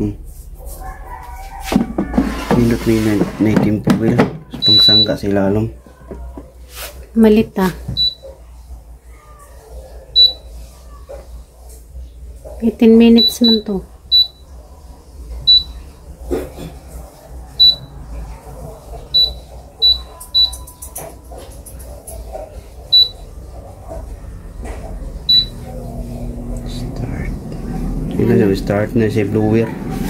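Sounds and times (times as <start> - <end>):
touch panel beeping: 4.6 - 5.2, 8.0 - 8.2, 13.2 - 14.4, 15.5 - 15.8, 17.6 - 17.9, 19.1 - 20.7, 22.9 - 23.2, 25.2 - 25.6
air fryer fan humming: 22.9 - 30.0.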